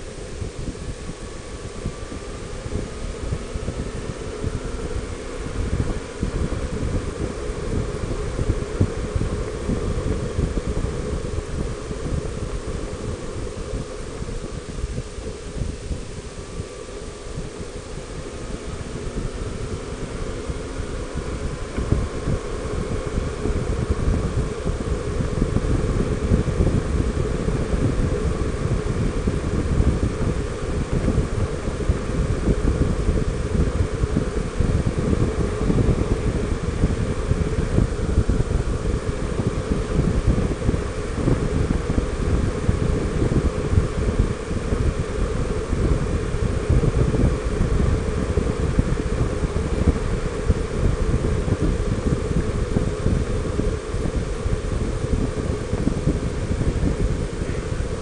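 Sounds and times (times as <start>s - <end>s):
motorcycle engine running: 0.0s - 58.0s
wind buffeting on microphone: 0.0s - 58.0s.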